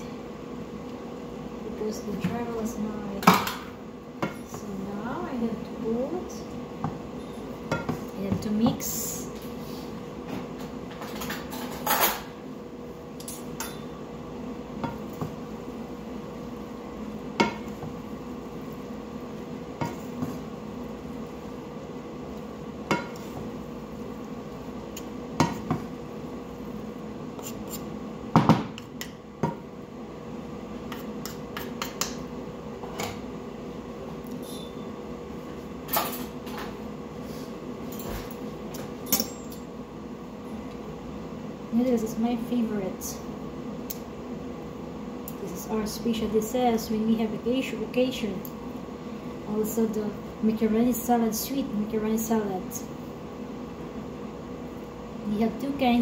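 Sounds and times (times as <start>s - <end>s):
steady hum: 0.0s - 56.0s.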